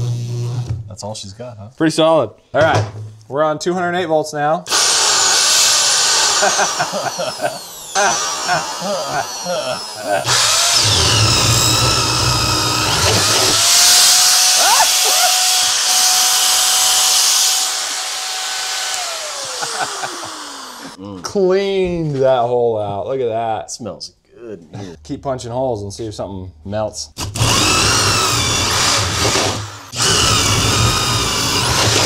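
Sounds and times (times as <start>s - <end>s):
drill bit chewing through wood: 4.7s - 21.0s, 27.2s - 32.0s
electric drill whining: 4.7s - 21.0s, 27.2s - 32.0s.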